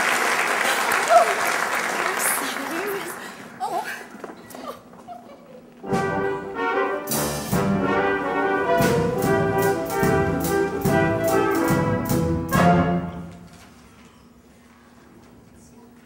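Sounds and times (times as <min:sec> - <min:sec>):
brass show band playing: 0:05.8 - 0:13.5
drum and cymbal hits: 0:07.0 - 0:13.2.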